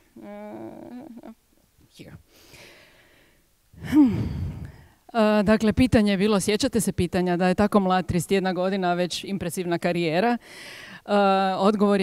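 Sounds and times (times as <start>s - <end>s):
woman sighing: 3.8s - 5.0s.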